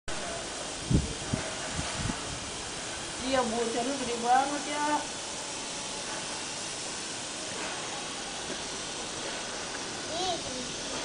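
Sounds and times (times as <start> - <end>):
water spraying from a hose: 0.1 - 11.0.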